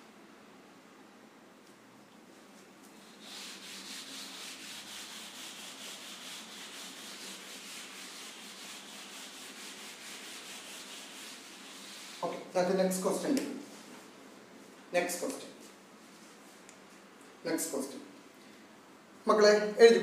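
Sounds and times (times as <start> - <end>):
duster rubbing chalkboard: 2.9 - 13.2.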